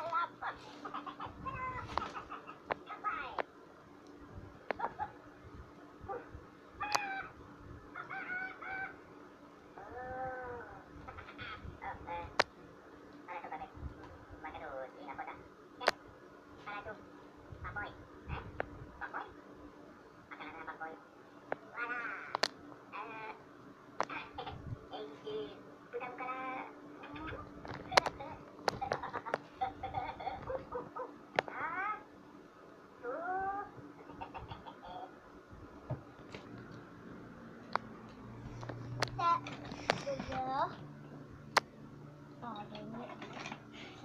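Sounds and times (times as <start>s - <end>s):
high-pitched voice sounds: 0.0s - 3.4s, 9.8s - 12.3s, 33.0s - 33.8s.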